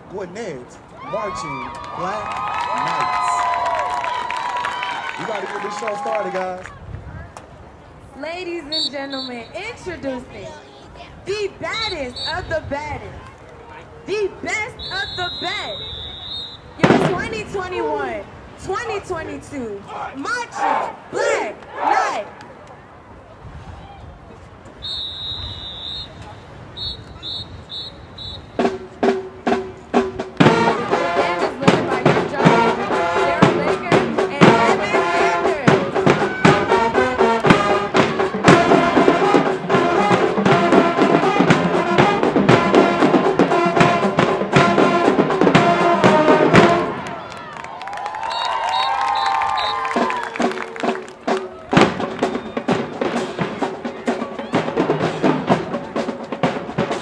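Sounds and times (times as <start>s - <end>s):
voices shouting: 0.9s - 6.7s, 13.2s - 22.9s, 30.4s - 41.5s
marching band playing: 8.4s - 10.5s, 11.3s - 13.1s, 14.1s - 22.3s, 24.8s - 57.0s
drumline snares and bass drums: 14.4s - 22.6s, 24.7s - 57.0s.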